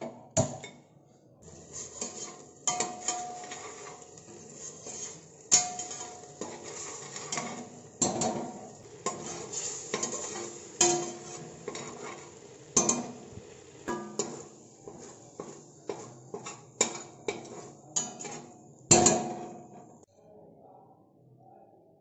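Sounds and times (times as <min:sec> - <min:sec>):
spoon scraping metal pot: 0:01.4 - 0:13.3, 0:13.9 - 0:19.9
spoon clinking on pot side: 0:02.0 - 0:04.0, 0:05.0 - 0:12.0, 0:12.8 - 0:13.2.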